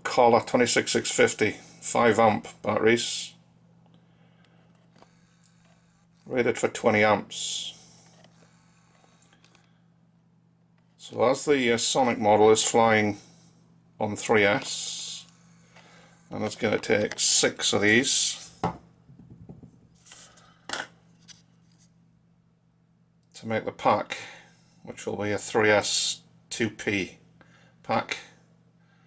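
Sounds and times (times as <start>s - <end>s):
faint low hum: 0.0s - 29.0s.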